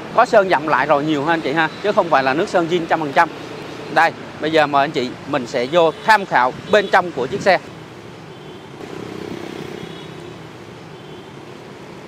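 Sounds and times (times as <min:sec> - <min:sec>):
engine hum: 0:07.4 - 0:12.0.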